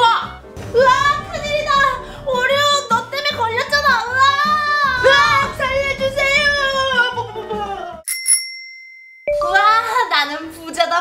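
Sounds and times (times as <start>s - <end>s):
bright bell-like chime: 8.1s - 10.0s.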